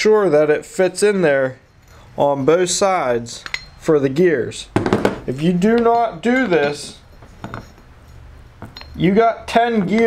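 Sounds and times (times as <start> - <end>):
light metallic clinks: 3.4 - 3.8, 5.8 - 9.0.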